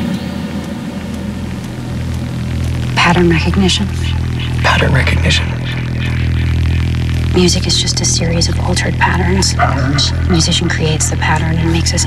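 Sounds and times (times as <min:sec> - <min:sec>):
low bass electronic drone: 0:00.0 - 0:12.0
white noise hiss: 0:00.0 - 0:12.0.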